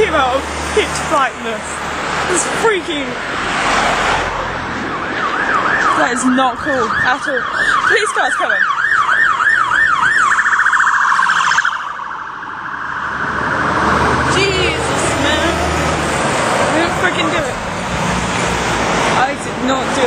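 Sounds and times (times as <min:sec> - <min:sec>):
vehicle passing: 0:00.0 - 0:08.6, 0:11.6 - 0:20.0
road traffic: 0:00.0 - 0:20.0
police siren yelping: 0:04.6 - 0:15.6.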